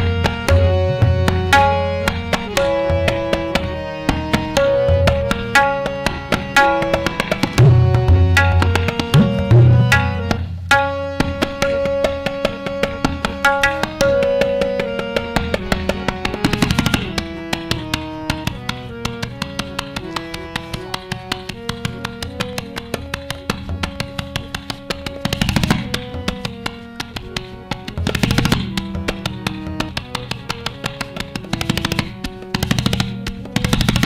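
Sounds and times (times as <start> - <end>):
harmonium melody: 0.0 - 34.0
tabla drumming: 0.0 - 34.0.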